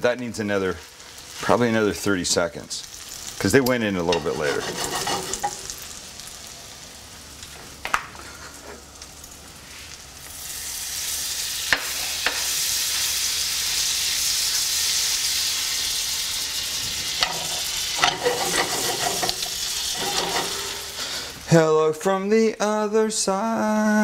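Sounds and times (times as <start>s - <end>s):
bread sizzling in butter: 0.5s - 21.5s.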